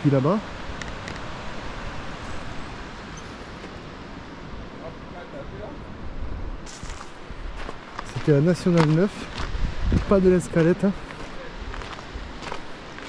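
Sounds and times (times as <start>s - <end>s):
water cascading over rocks: 0.0s - 5.0s
wind rumble on microphone: 0.0s - 13.0s.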